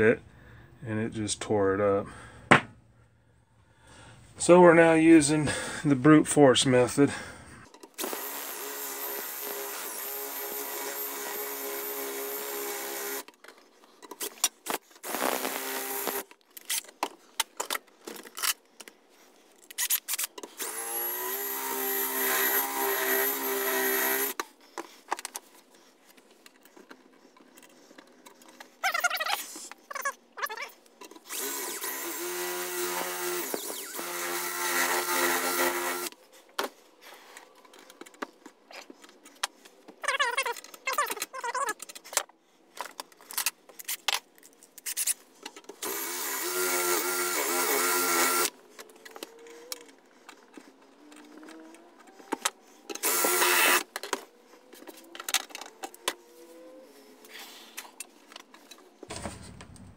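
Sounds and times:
electric drill whining: 0:08.0 - 0:13.3, 0:15.0 - 0:16.3, 0:20.6 - 0:24.4, 0:31.3 - 0:36.1, 0:45.8 - 0:49.8, 0:51.2 - 0:54.0.

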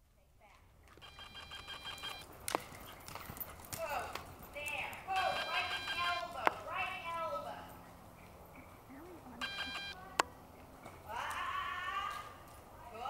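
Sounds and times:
horse cantering on soft footing: 0:00.4 - 0:09.4.

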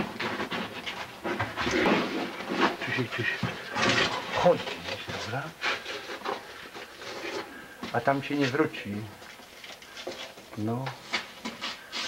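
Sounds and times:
person speaking: 0:02.8 - 0:05.6, 0:07.8 - 0:09.2.

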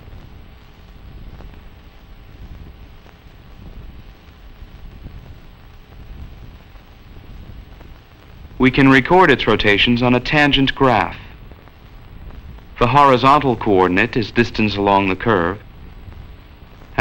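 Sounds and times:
film soundtrack rumble and hiss: 0:00.0 - 0:17.0.

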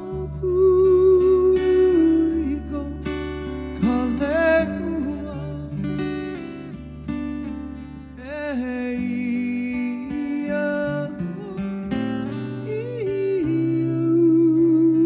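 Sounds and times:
man singing wordless notes: 0:00.0 - 0:06.3, 0:08.1 - 0:15.0
strummed acoustic guitar: 0:00.0 - 0:15.0.

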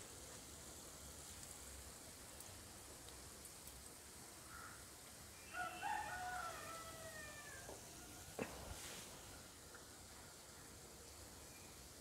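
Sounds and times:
food frying in oil: 0:00.0 - 0:05.4
rooster crowing: 0:05.5 - 0:08.4.

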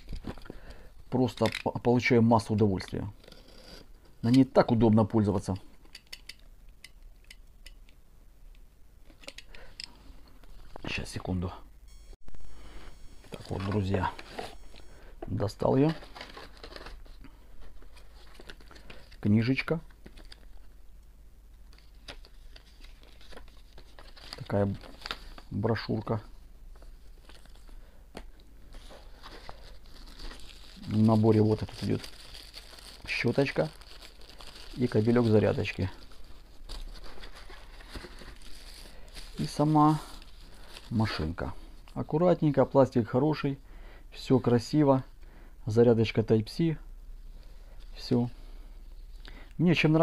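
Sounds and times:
plastic wrapping and paper rustling: 0:12.6 - 0:20.7, 0:21.6 - 0:27.8, 0:28.6 - 0:41.5
plastic film crinkling: 0:21.8 - 0:25.6, 0:28.7 - 0:41.4.

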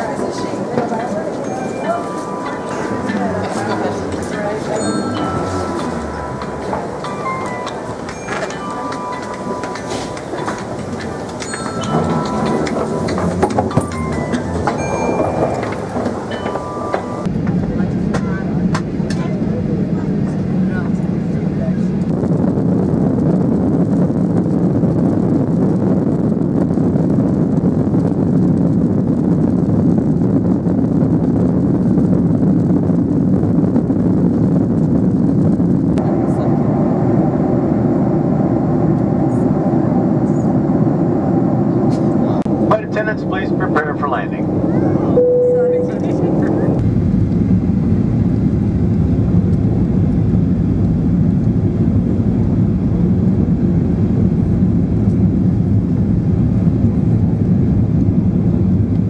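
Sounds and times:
jet cabin engine and airflow noise: 0:00.0 - 0:59.0
short electronic tones: 0:45.2 - 0:46.1.

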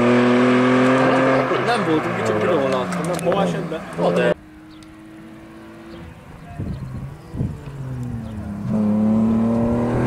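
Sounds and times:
car engine revving hard: 0:00.0 - 0:02.8, 0:07.8 - 0:10.0.

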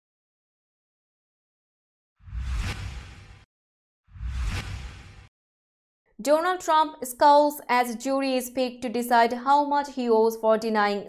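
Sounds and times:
whoosh sound effect: 0:02.2 - 0:03.5, 0:04.1 - 0:05.3.

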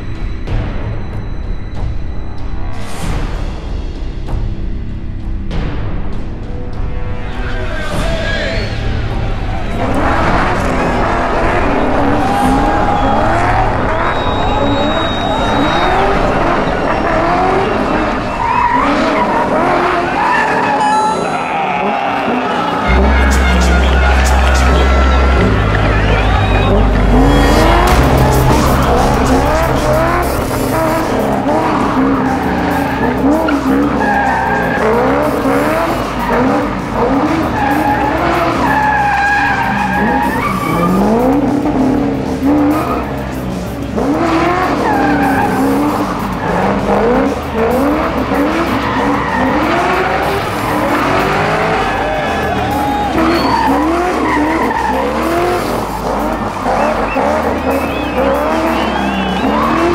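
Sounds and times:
music: 0:00.0 - 0:59.9
car engine revving: 0:06.7 - 0:59.9
tyres squealing: 0:07.3 - 0:59.9.

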